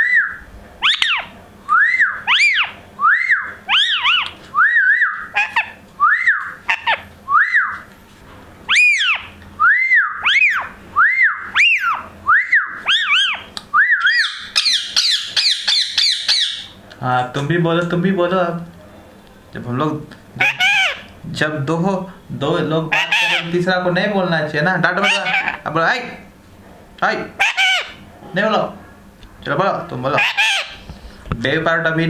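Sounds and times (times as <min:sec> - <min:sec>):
parakeet whistled calls: 0:00.0 - 0:07.9, 0:08.7 - 0:16.8, 0:20.4 - 0:21.1, 0:22.9 - 0:23.5, 0:25.0 - 0:25.6, 0:27.4 - 0:28.0, 0:30.2 - 0:30.9.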